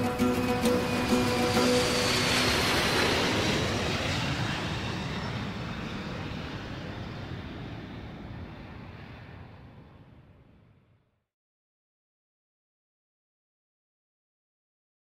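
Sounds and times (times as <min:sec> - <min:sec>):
jet airliner flying overhead: 0:00.0 - 0:11.1.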